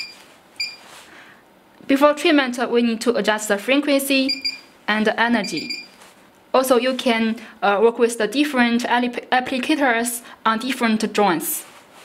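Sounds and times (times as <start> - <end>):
short high electronic beeps: 0.0 - 0.8, 4.3 - 4.7, 5.4 - 6.0.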